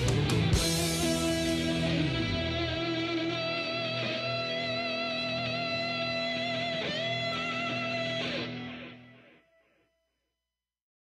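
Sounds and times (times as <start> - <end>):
rock music with electric guitar: 0.0 - 9.6.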